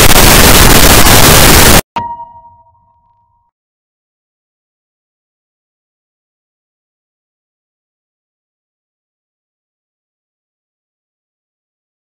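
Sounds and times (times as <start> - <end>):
loud static hiss: 0.0 - 1.8
ringing metallic clang: 2.0 - 3.5.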